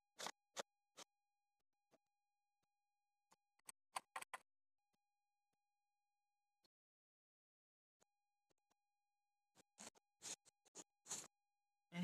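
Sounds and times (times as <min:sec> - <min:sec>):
scratchy rubs on phone microphone: 0:09.6 - 0:11.4.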